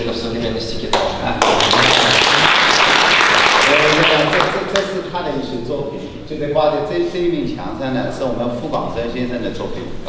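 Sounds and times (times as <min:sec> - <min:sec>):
audience applauding: 0:01.4 - 0:04.9.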